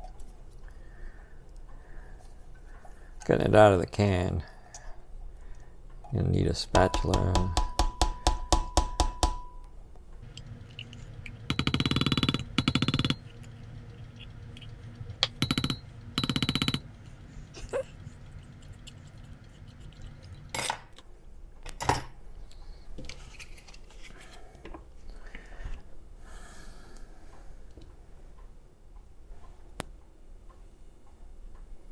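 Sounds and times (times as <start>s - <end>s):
sharp knocks: 6.7s - 9.6s
spatula tapping: 6.7s - 9.7s, 10.3s - 16.9s.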